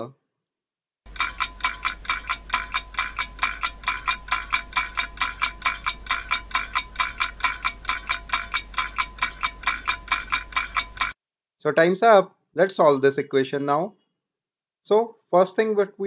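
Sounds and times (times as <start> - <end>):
timer ticking with metallic ring: 1.1 - 11.2.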